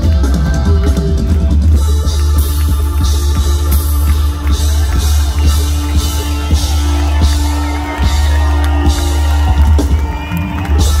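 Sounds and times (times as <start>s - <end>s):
reggae band playing through speakers: 0.0s - 11.0s
crowd whooping: 4.5s - 11.0s.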